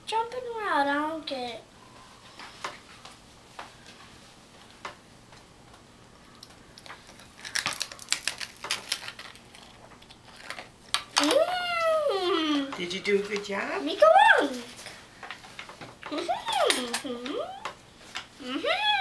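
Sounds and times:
child's high-pitched voice: 13.9 - 14.7.

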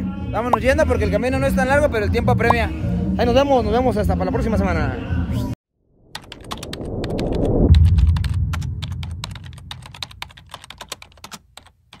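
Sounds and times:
rising swell: 5.8 - 10.2
deep boom: 5.9 - 10.6
rapid keyboard typing clicks: 6.2 - 7.4, 8.1 - 12.0.

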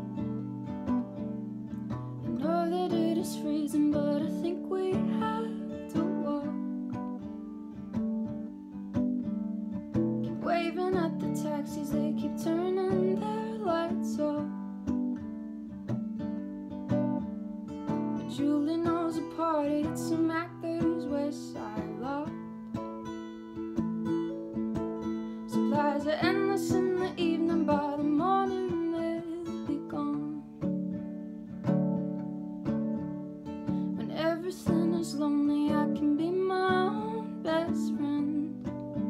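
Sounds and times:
acoustic guitar picking: 0.0 - 39.0
woman singing: 2.3 - 7.3, 10.2 - 14.7, 18.2 - 22.5, 25.5 - 30.7, 33.9 - 39.0.

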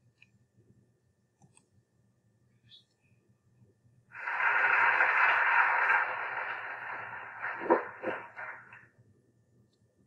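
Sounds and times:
audience applause: 4.2 - 8.8.

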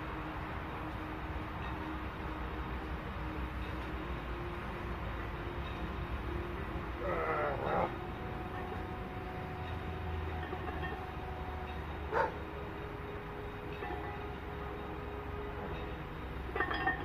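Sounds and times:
faint steady tones: 0.0 - 17.0
low outdoor hum: 0.0 - 17.0.

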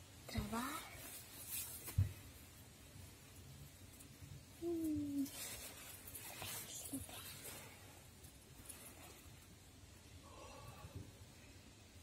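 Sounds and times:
faint rustle: 0.3 - 11.6
person humming: 4.6 - 5.3.

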